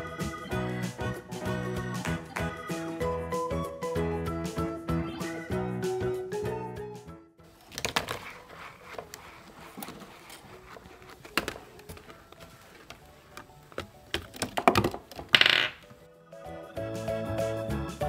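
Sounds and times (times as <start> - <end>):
background music: 0.0 - 18.0
marble rolling on paper track: 7.6 - 13.4, 14.2 - 15.8
marble clattering: 10.3 - 16.0.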